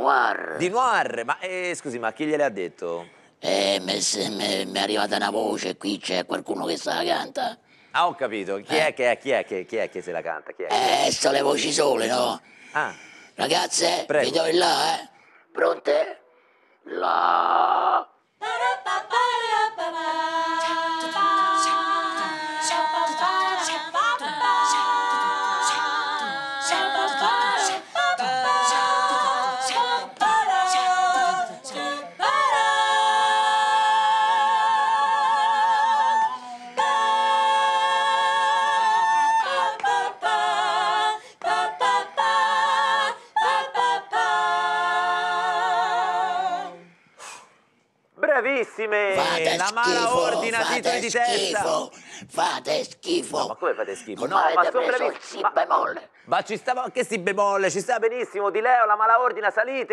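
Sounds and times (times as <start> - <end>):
women singing in close harmony: 18.4 - 46.9, 49.2 - 52.8.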